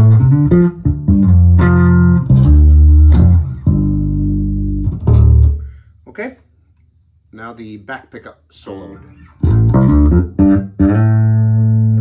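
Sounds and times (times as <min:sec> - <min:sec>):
electric bass plucked notes: 0:00.0 - 0:05.7, 0:09.0 - 0:12.0.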